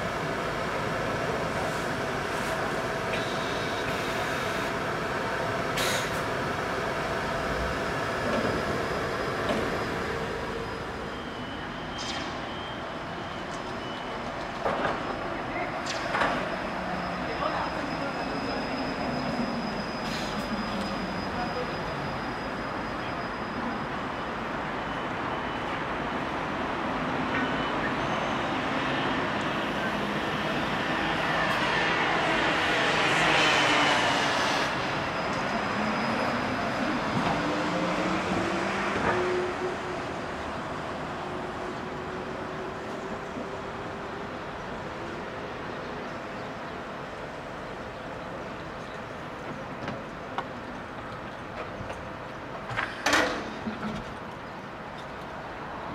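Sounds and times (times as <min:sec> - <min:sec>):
street noise: 0:00.0 - 0:55.9
trolleybus electric drive whining: 0:00.0 - 0:55.9.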